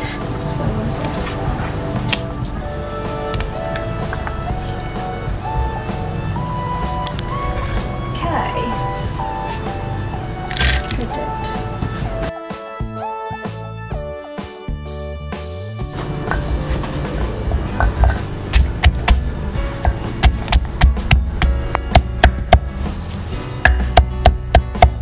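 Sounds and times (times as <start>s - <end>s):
background music with held notes: 0.0s - 25.0s.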